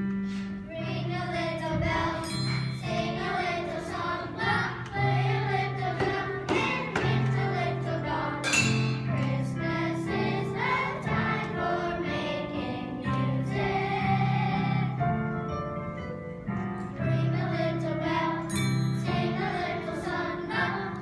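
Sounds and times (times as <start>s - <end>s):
children's choir singing: 0.6s - 21.0s.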